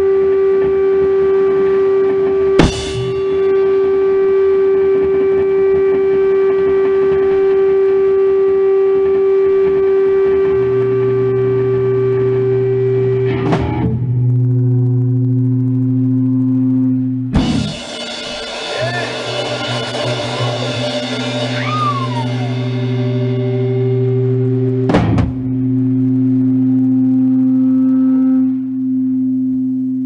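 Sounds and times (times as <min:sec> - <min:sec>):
lower drone: 0:00.0 - 0:30.0
steady held drone: 0:00.0 - 0:30.0.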